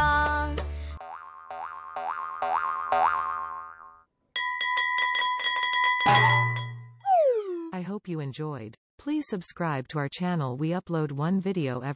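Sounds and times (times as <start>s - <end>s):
cartoon springy boings: 1.0s - 4.0s, 6.1s - 7.8s
bell ringing rapidly: 4.4s - 7.0s.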